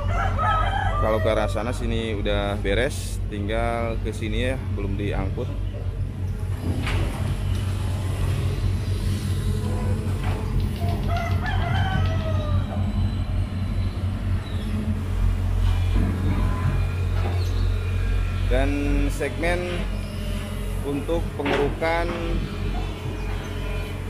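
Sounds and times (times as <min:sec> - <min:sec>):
diesel engine running: 0:01.5 - 0:24.0
bird calling: 0:09.6 - 0:21.3.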